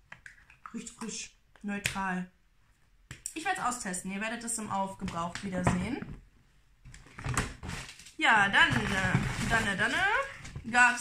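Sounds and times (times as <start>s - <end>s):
items knocking and clicking: 5.0s - 10.7s.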